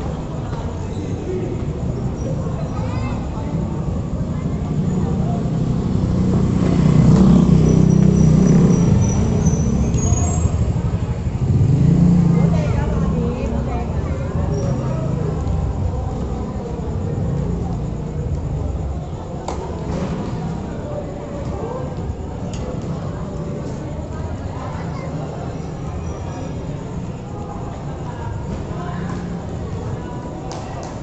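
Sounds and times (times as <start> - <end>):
indistinct voices: 0.0 - 31.0.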